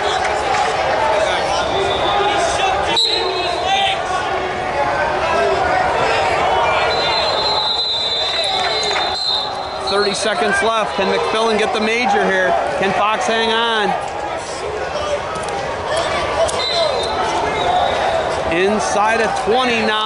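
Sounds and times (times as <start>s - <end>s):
crowd talking and calling out: 0.0s - 20.0s.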